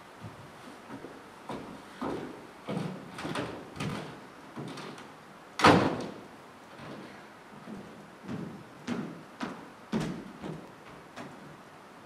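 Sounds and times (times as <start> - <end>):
footsteps on wooden stage: 0.2 - 5.1, 5.9 - 11.7
door shutting with a bang: 5.6 - 6.2.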